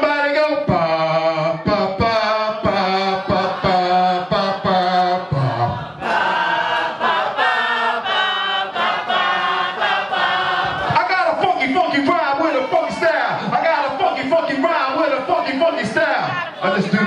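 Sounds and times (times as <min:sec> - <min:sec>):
man rapping into a microphone: 0:00.0 - 0:05.8, 0:10.9 - 0:17.0
crowd chanting along: 0:01.1 - 0:17.0.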